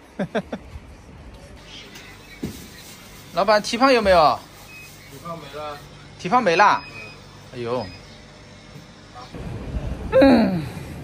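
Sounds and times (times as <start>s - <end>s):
passing street traffic rumble: 9.3s - 11.0s.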